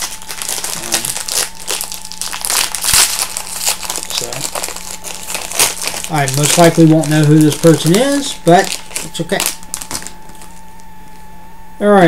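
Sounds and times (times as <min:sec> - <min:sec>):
plastic packaging crinkling: 0:00.0 - 0:10.8.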